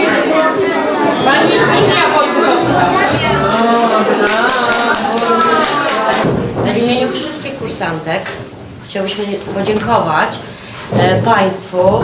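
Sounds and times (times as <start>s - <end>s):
people talking over one another: 0.0s - 8.2s.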